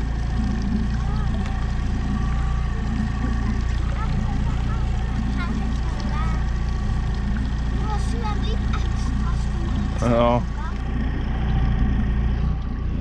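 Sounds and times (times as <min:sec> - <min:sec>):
outboard motor running: 0:00.0 - 0:13.0.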